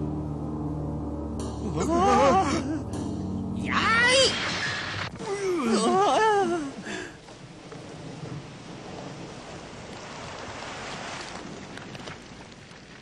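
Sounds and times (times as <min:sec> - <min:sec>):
rain-like hiss: 0:04.0 - 0:13.0.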